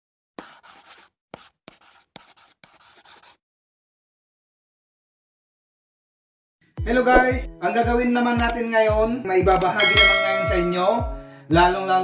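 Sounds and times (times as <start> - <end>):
pen scratching on paper: 0.4 - 3.4.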